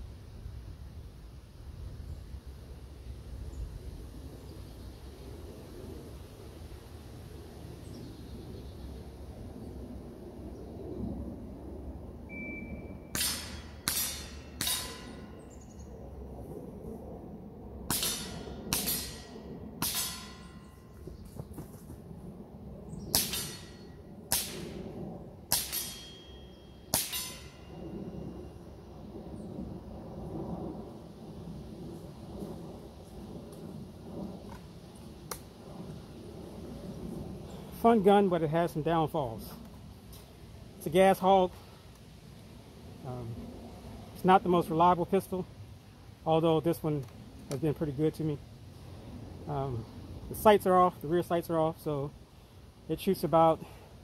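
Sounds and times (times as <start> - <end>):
pellet pistol shots: 13.1 - 15.2, 17.9 - 20.5, 23.1 - 24.8, 25.5 - 26.3, 26.9 - 27.6.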